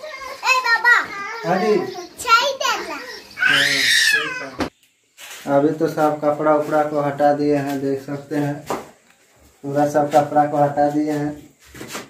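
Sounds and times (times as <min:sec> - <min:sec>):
young girl talking: 0:00.0 - 0:03.4
man speaking: 0:01.4 - 0:02.1, 0:05.5 - 0:08.8, 0:09.6 - 0:11.4.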